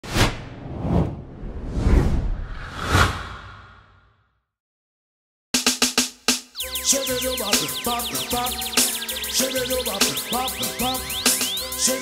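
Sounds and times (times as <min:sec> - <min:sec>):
whooshes with deep boom: 0:00.0 - 0:04.0.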